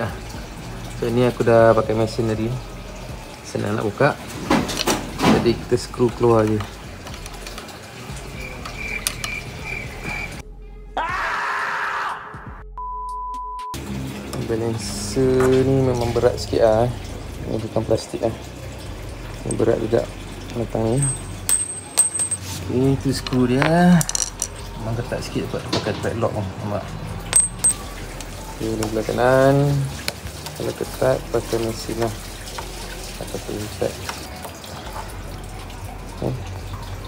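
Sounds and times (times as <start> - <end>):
metal parts clinking: 20.9 - 24.8, 27.3 - 27.9.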